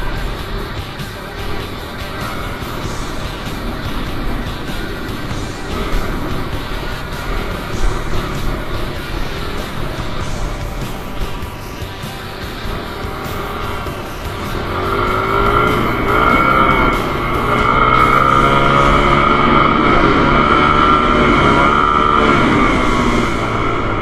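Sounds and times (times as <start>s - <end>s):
dirt bike engine revving: 0.0s - 24.0s.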